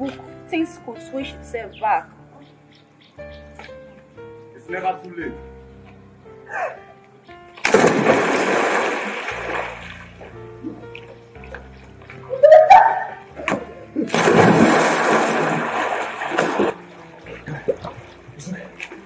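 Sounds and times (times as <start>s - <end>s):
background music: 0.0s - 19.0s
people splashing into pool: 7.6s - 10.3s, 11.0s - 19.0s.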